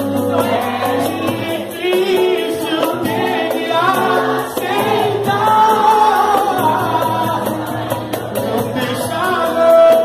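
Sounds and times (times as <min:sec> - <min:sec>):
light percussion: 0:00.0 - 0:10.0
strummed cavaquinho: 0:00.0 - 0:10.0
voices singing together: 0:00.0 - 0:10.0.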